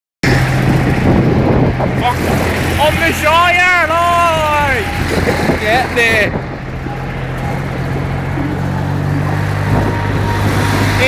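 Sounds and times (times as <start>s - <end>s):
tractor engine droning: 0.2s - 11.0s.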